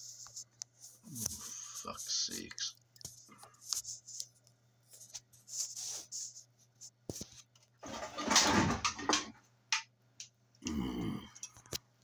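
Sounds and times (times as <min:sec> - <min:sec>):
faint low hum: 0:00.0 - 0:12.0
rubbing noise: 0:04.9 - 0:08.1.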